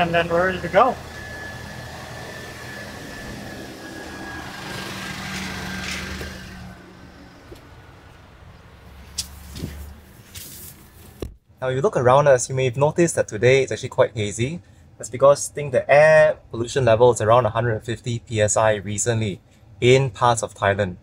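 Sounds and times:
charger fans humming with whine: 0:00.0 - 0:21.0.

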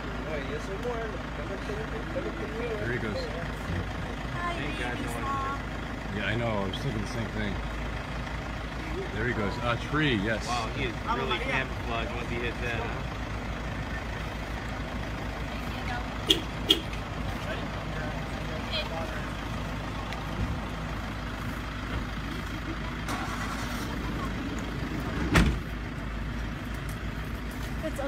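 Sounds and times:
engine idling: 0:00.0 - 0:28.0.

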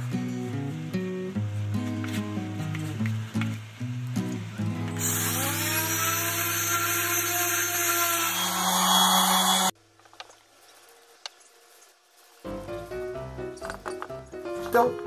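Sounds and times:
electric orbital sander on wood: 0:05.0 - 0:09.8
background music: 0:12.5 - 0:15.0.

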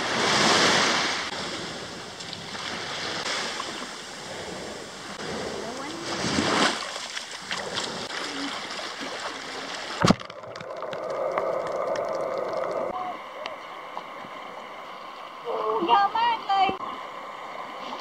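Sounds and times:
small waves washing onto sand: 0:00.0 - 0:10.0.

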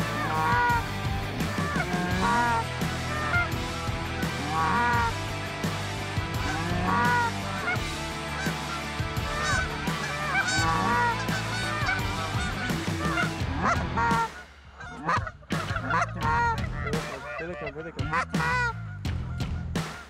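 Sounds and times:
geese honking: 0:00.0 - 0:20.0.

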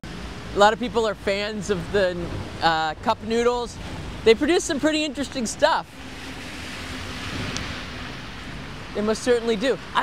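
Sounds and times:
traffic hiss on wet road: 0:00.1 - 0:10.0.

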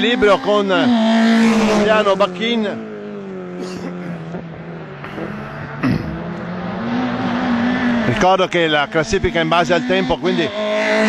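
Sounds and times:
race car engine at high revs: 0:00.0 - 0:11.0.

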